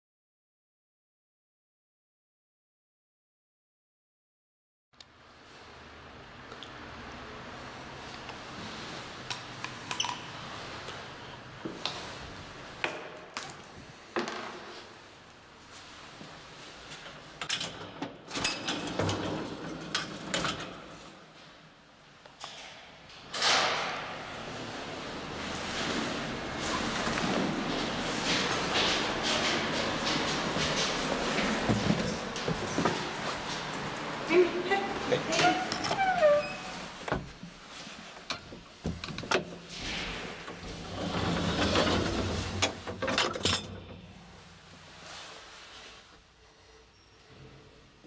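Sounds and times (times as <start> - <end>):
metal elevator gate clicks: 17.4 - 20.8.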